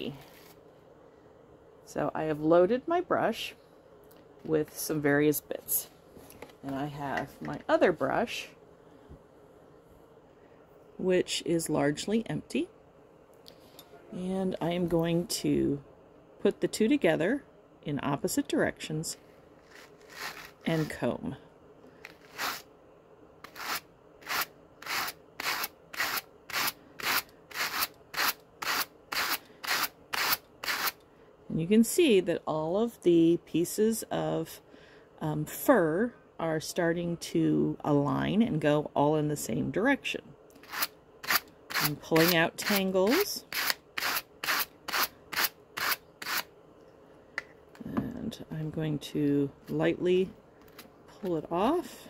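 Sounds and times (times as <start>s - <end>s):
hand cards brushing fur: 19.6s - 21.0s, 22.0s - 22.7s, 23.4s - 26.7s
hand carders rasping on fur: 22.1s - 22.6s, 23.4s - 31.0s, 40.6s - 46.5s.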